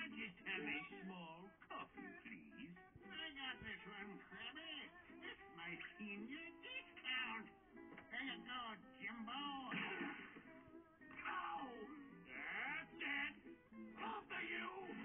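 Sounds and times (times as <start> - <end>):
background music from television: 0.0 - 15.0
cartoon dialogue from television: 0.0 - 15.0.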